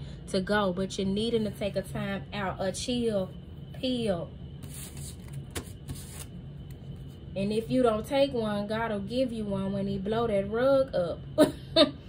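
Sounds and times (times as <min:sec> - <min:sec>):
low steady hum: 0:00.0 - 0:12.0
cards rustling: 0:04.6 - 0:07.1.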